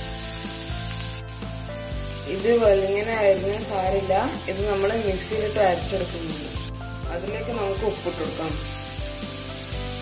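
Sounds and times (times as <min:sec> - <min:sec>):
background music with soft beats: 0:00.0 - 0:10.0
onions sizzling in a pan: 0:00.0 - 0:10.0.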